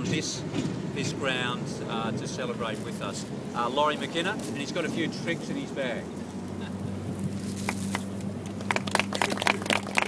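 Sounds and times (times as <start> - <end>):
sharp crackles and claps: 7.4 - 10.0.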